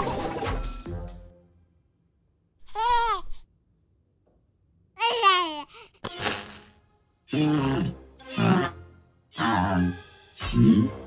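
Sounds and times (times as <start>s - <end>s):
cartoon sharp crack: 6.0s - 6.8s.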